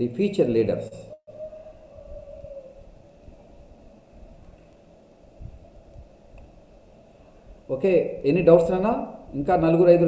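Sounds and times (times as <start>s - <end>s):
faint steady hum: 1.0s - 9.7s.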